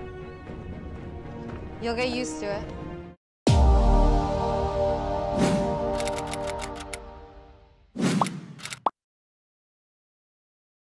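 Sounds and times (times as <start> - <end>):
sharp click: 6.0 - 7.0, 8.2 - 8.9.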